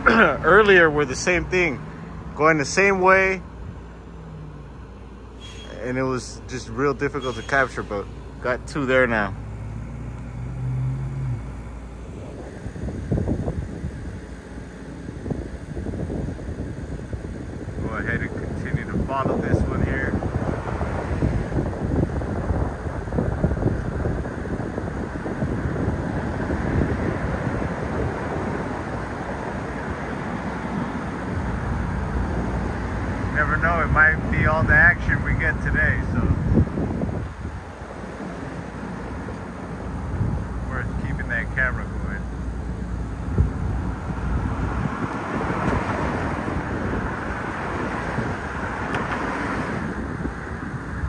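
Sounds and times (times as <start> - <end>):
passing traffic: 0.0 - 51.0
uneven rumble: 6.1 - 29.1
wind on microphone: 8.7 - 41.2, 42.9 - 51.0.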